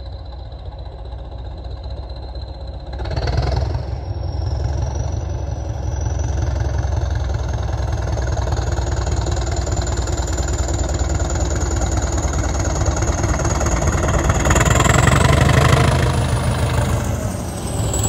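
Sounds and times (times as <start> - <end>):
diesel locomotive engine drone: 0.0 - 18.0
thin high whistle: 14.4 - 18.0.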